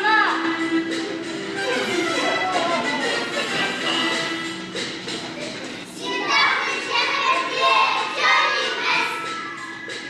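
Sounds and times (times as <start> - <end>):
children's voices in chorus: 6.0 - 9.7.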